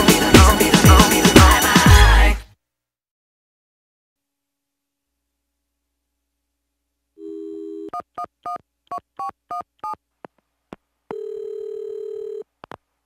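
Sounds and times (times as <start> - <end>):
telephone dial tone: 7.2 - 8.6, 11.1 - 12.5
long steady call tone: 7.2 - 10.0, 11.1 - 12.8.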